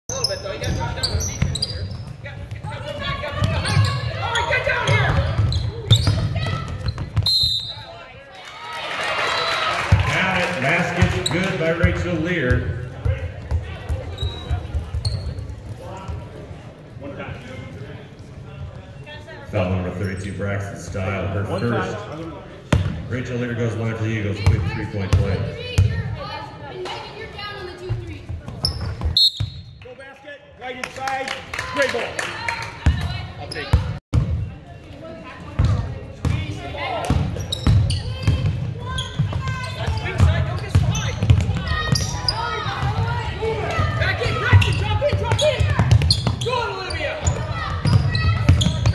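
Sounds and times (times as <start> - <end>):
crowd and players talking: 0.0 - 48.9
sneaker squeaks on hardwood floor: 0.1 - 7.9, 13.9 - 15.6, 27.9 - 29.8, 37.1 - 43.0, 44.2 - 48.9
basketball bouncing on wooden floor: 47.3 - 48.9.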